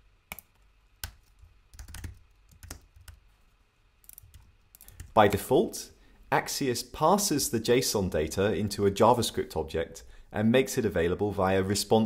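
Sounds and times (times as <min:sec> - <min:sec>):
computer keyboard keystrokes: 0:00.3 - 0:03.2, 0:04.1 - 0:05.2.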